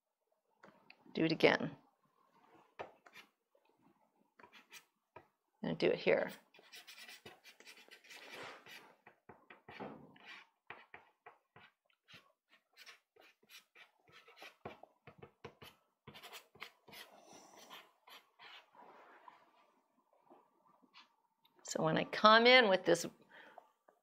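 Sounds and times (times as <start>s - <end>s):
pastel stick scratching on paper: 4.4s - 4.9s, 6.3s - 8.9s, 9.7s - 18.7s.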